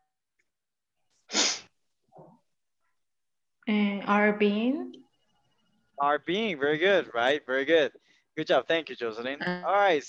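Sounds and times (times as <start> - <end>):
person sneezing: 1.3 - 1.7.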